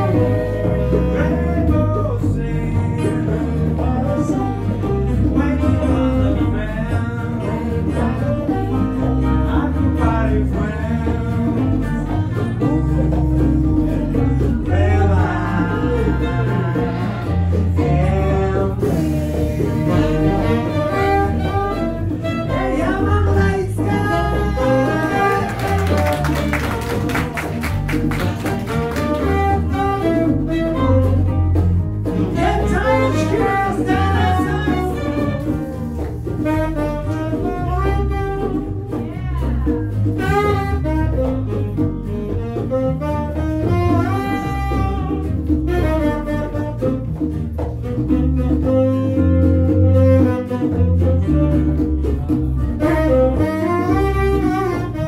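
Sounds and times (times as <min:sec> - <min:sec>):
saxophones: 0:00.0 - 0:02.0, 0:11.6 - 0:39.4, 0:40.2 - 0:47.2, 0:47.8 - 0:55.0
acoustic guitar: 0:00.0 - 0:55.0
electric bass line: 0:00.0 - 0:55.0
woman singing into microphone: 0:22.5 - 0:25.8, 0:32.3 - 0:35.4.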